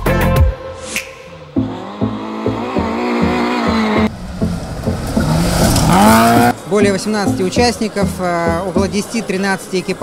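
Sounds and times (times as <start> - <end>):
rally car engine revving hard: 1.6 - 6.6.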